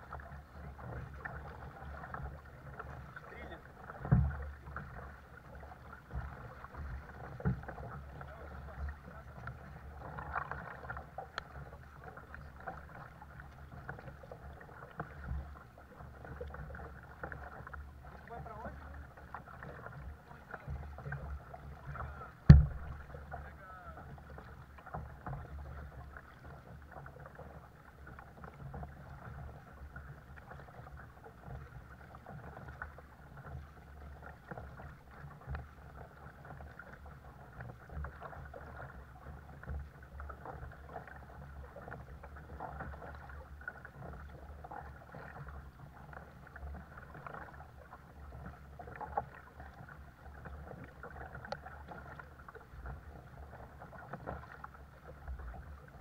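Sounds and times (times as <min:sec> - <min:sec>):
paddle splashing in water: 0:00.0 - 0:56.0
water and wind wash: 0:00.0 - 0:56.0.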